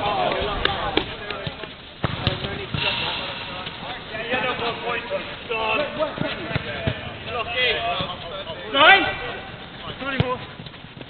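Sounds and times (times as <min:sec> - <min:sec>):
footballers shouting: 0:00.0 - 0:10.6
football being kicked: 0:01.0 - 0:02.9.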